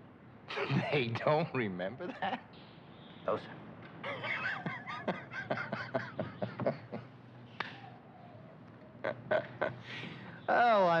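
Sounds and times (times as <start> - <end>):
man chuckling: 4.0 - 7.1, 9.0 - 9.9.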